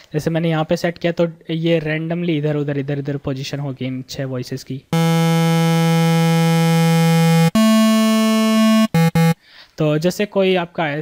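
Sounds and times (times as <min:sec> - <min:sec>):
synthesizer holding a note: 0:05.0 - 0:09.4.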